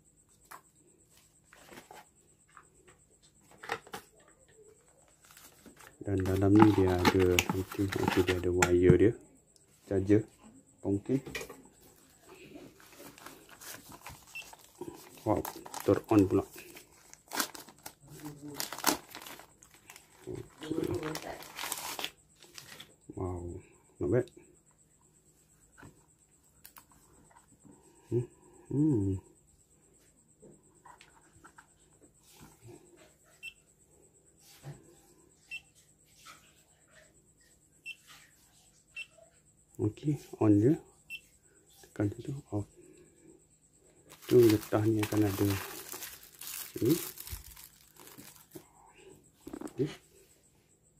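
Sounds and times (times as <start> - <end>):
plastic wrapper rustling: 5.1 - 8.4, 12.8 - 22.9, 44.1 - 48.6.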